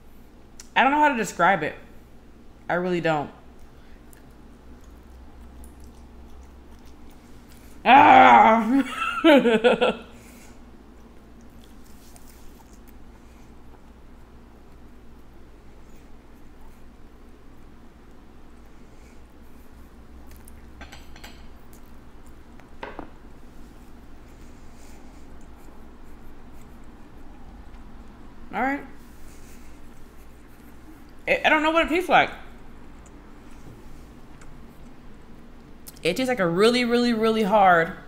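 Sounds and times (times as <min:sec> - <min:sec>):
faint chewing: 0:03.4 - 0:07.8, 0:10.2 - 0:20.8, 0:21.4 - 0:31.3, 0:32.5 - 0:36.0
person laughing: 0:07.9 - 0:10.2.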